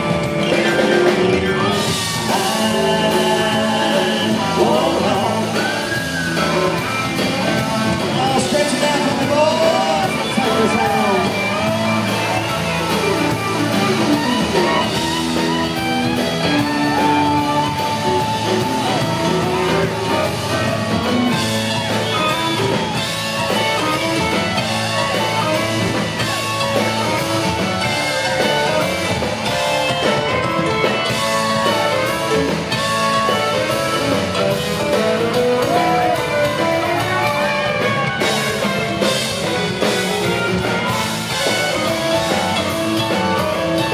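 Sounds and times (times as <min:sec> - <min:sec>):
bass: 0:00.0 - 0:43.9
live country band playing: 0:00.0 - 0:43.9
sliding bending lead guitar line: 0:00.0 - 0:43.9.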